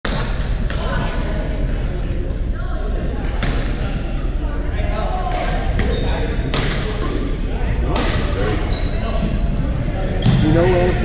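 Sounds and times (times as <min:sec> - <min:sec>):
voices: 0:00.1 - 0:11.0.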